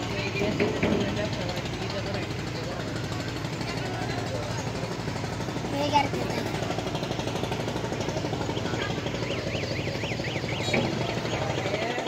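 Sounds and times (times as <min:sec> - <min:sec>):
boat engine running: 0:00.0 - 0:12.0
high rising and falling chirp: 0:08.4 - 0:11.8.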